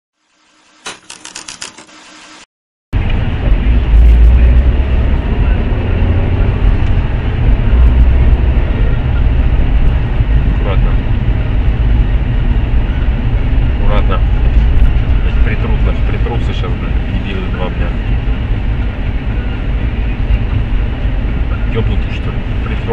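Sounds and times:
car driving low rumble: 0:03.0 - 0:22.9.

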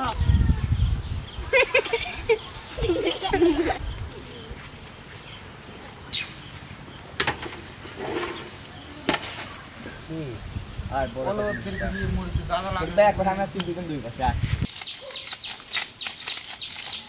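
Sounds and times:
outdoor background noise: 0:00.0 - 0:17.0
children chattering: 0:01.4 - 0:04.7, 0:08.4 - 0:10.3.

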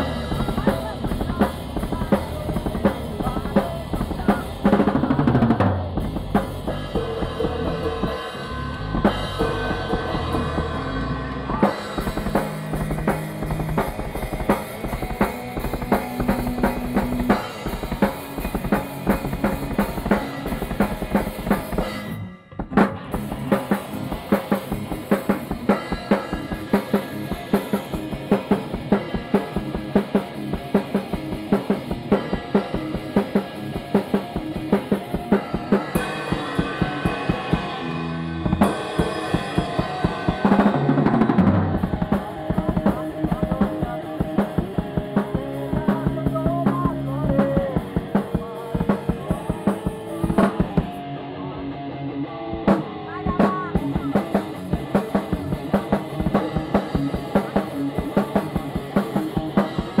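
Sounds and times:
drum kit played fast: 0:00.0 - 0:51.2, 0:52.6 - 1:00.0
electric guitar riff: 0:00.0 - 1:00.0.

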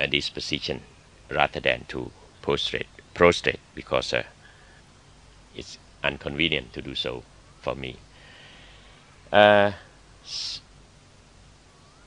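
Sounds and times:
man's breathy hiss: 0:08.1 - 0:09.0.

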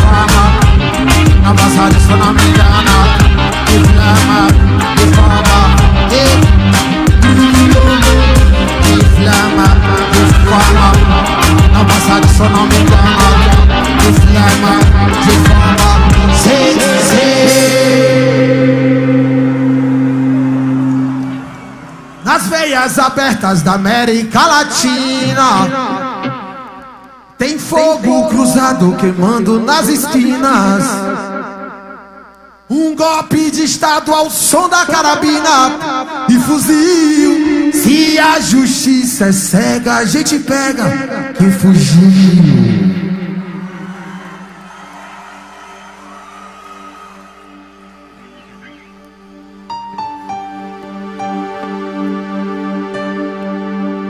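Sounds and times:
band sustained chord: 0:17.4 - 0:23.2, 0:47.4 - 0:54.0.

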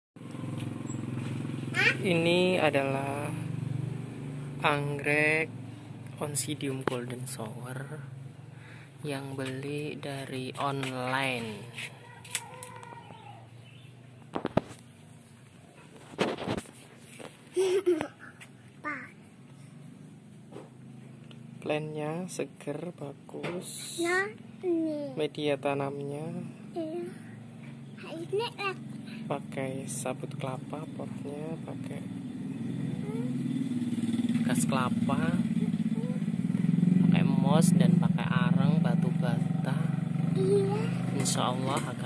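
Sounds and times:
small engine humming: 0:00.2 - 0:04.0, 0:26.4 - 0:37.4.

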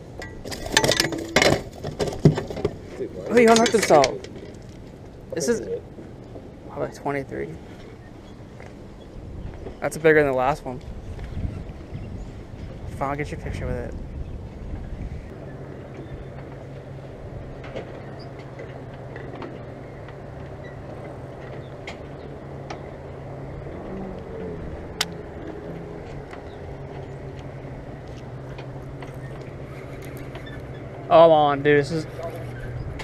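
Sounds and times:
distant engine humming: 0:00.0 - 0:33.0.

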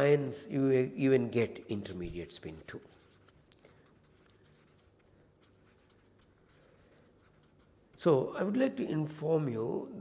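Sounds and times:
marker scratching on paper: 0:02.2 - 0:08.0.

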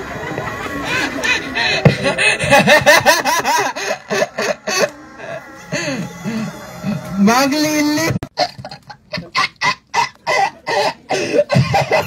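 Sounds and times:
man's voice through microphone: 0:06.8 - 0:08.3.

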